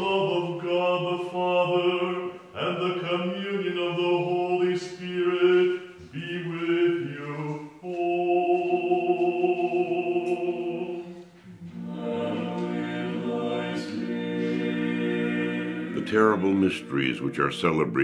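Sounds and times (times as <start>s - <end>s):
voices singing liturgical chant: 0.0s - 17.5s.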